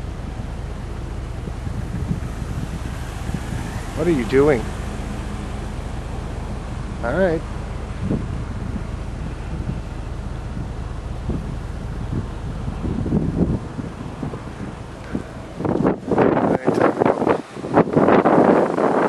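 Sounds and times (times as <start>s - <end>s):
wind gusts buffeting microphone: 0.0s - 19.0s.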